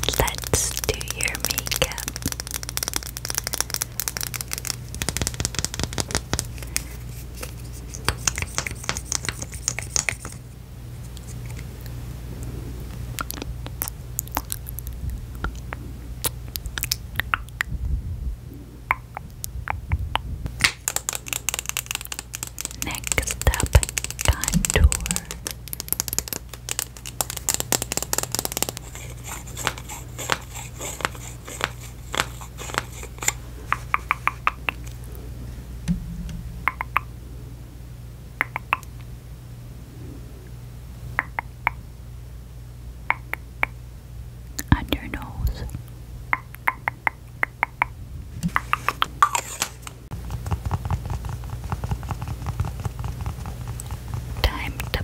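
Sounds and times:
fingernails tapping on tube: 20.6 - 34.8.

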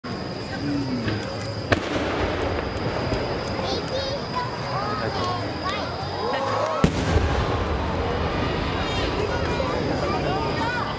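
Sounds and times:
crowd murmuring: 0.1 - 10.9
firework mortar launch: 1.0 - 10.8
firework shell rising trail: 1.2 - 4.7, 6.0 - 10.2.

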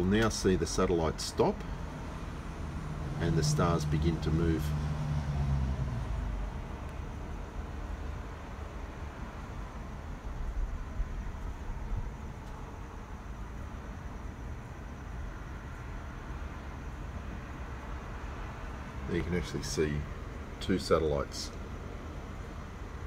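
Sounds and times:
low background rumble: 0.0 - 23.0.

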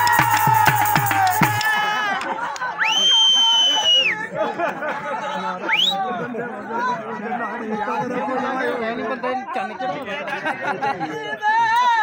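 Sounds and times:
crowd chatter: 0.0 - 12.0
loud shrill whistle: 2.8 - 4.1.

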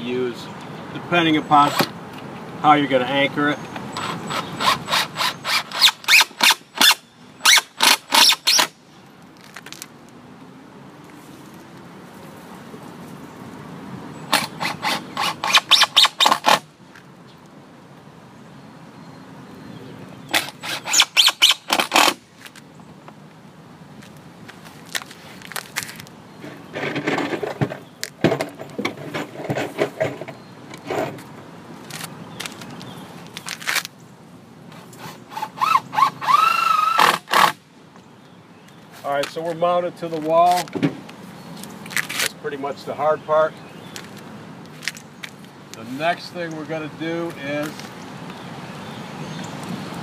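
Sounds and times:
cordless drill driving screws: 4.0 - 8.7, 35.0 - 37.6.

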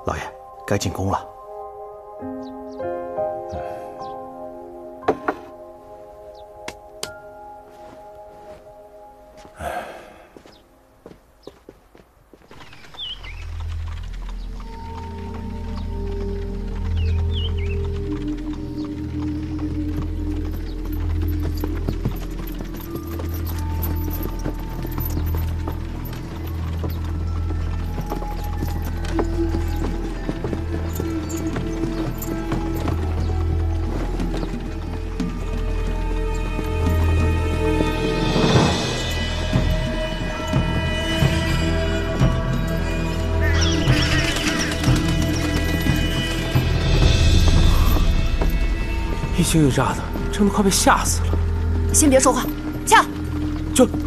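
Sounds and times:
horse hooves clip-clopping: 10.4 - 54.0.

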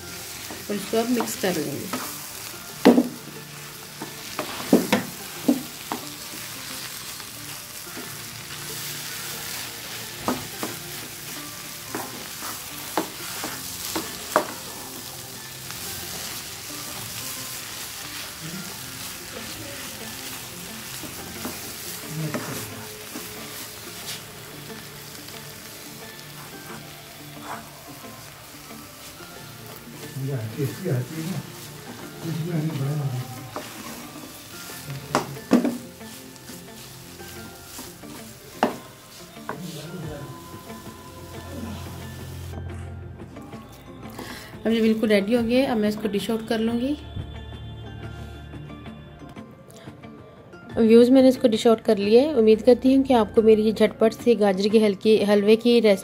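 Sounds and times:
frying sizzle: 0.0 - 42.6
spatula knocking on pan: 2.8 - 3.2, 4.0 - 6.2, 11.9 - 14.6, 35.0 - 35.9, 38.6 - 38.9
wooden spatula scraping pan: 11.9 - 15.0, 16.0 - 24.3, 26.2 - 27.8, 29.0 - 40.4.

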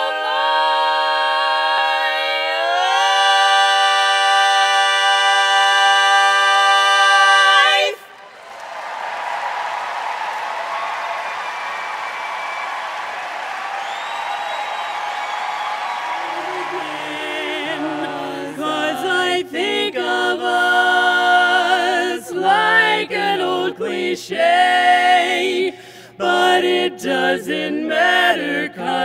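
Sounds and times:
women singing a cappella: 0.0 - 8.1, 16.3 - 29.0
audience applauding and cheering: 8.0 - 17.9
whoops from audience: 8.4 - 17.0.

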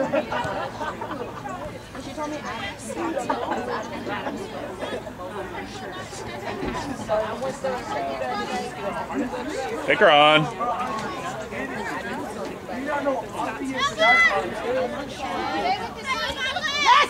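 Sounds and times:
overlapping voices chattering: 0.0 - 17.0
loud close shout: 13.6 - 14.6, 15.8 - 17.0.

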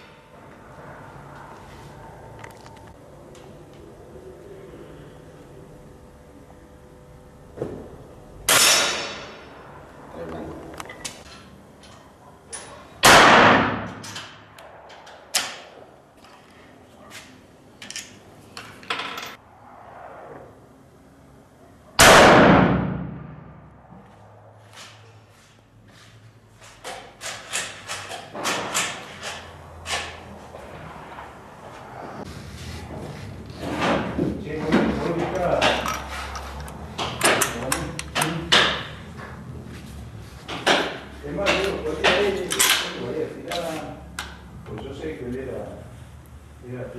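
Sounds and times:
rifle shots echoing: 13.0 - 14.0, 22.0 - 23.6.

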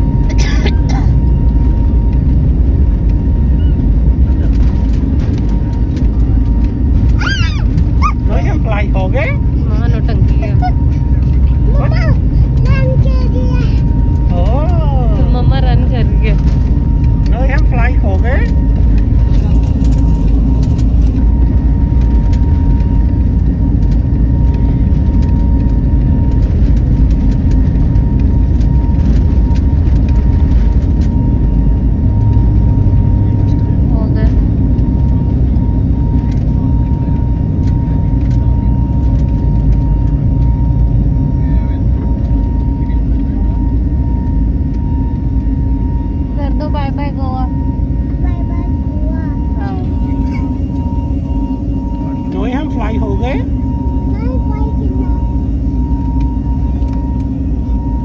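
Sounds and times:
jet engines rumbling: 0.0 - 58.0
thin steady whine: 0.0 - 58.0.

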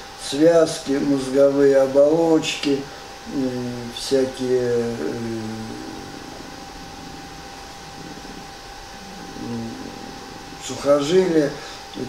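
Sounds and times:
faint steady whine: 0.0 - 12.0
room tone hiss: 0.0 - 12.0
man saying uh: 3.3 - 7.2, 9.0 - 12.0.

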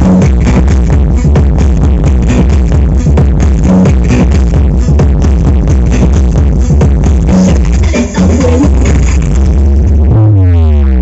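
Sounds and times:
loud electronic dance music: 0.0 - 11.0.

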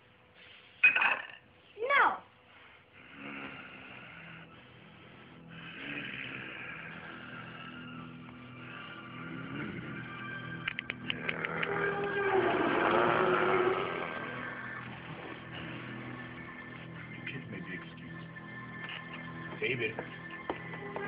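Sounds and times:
film score sustained tones: 3.9 - 21.0
knuckles cracking: 10.6 - 12.2.

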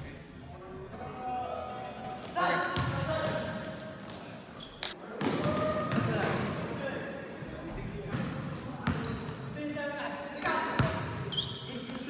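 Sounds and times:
players shouting and chatting: 0.0 - 12.0
basketball bouncing on gym court: 5.2 - 6.4, 8.1 - 9.3.

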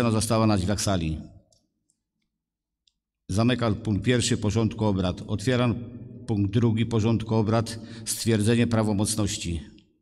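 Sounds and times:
man speaking: 3.3 - 9.8.

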